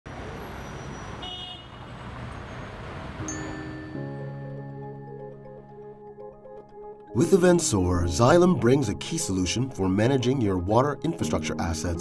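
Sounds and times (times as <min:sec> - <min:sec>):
city traffic: 0:00.0 - 0:04.4.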